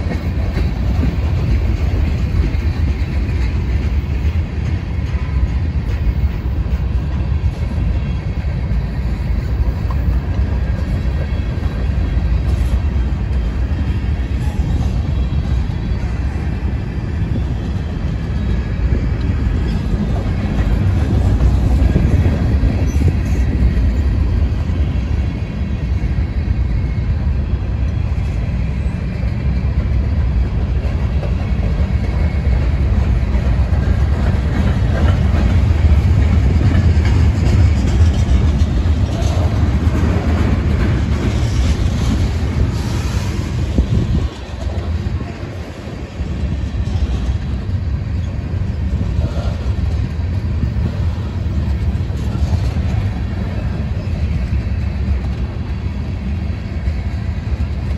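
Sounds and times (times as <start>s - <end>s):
freight train wheels rumbling on rail: 0.0s - 57.9s.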